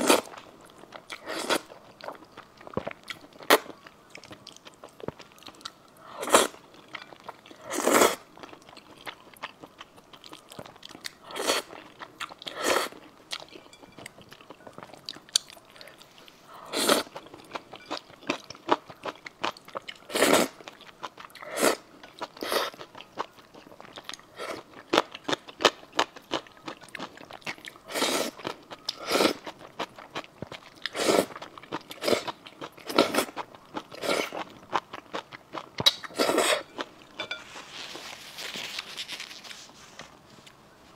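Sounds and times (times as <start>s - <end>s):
loud noodle slurps: 6.2s - 6.6s, 7.7s - 8.2s, 16.7s - 17.1s, 20.1s - 20.5s, 21.4s - 21.8s, 27.9s - 28.4s, 36.1s - 36.6s.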